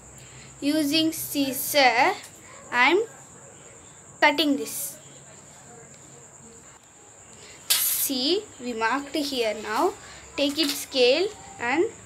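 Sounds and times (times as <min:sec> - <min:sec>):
high-pitched cricket-like trill: 0:00.0 - 0:12.0.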